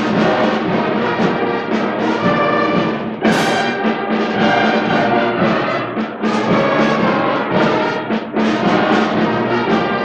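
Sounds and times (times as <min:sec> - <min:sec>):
concert band playing chords: 0:03.2 - 0:05.7.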